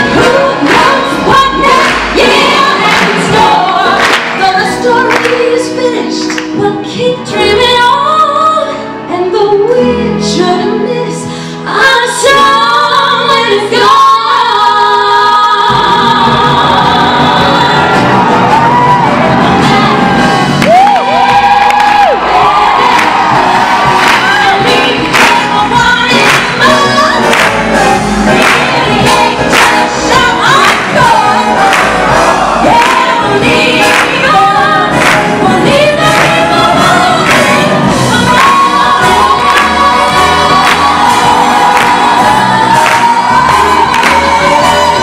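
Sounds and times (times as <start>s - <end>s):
woman singing into microphone: 0.0s - 20.4s, 23.8s - 27.6s, 28.3s - 45.0s
orchestra accompanying: 15.8s - 45.0s
audience cheering: 17.5s - 25.4s, 37.2s - 45.0s.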